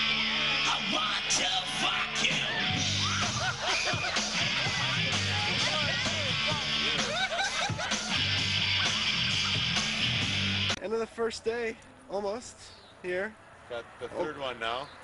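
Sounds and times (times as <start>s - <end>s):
live rock band playing: 2.2s - 10.8s.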